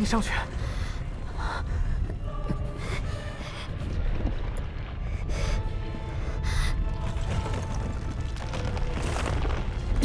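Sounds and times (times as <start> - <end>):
steady low rumble: 0.0 - 8.4
background music: 0.0 - 10.0.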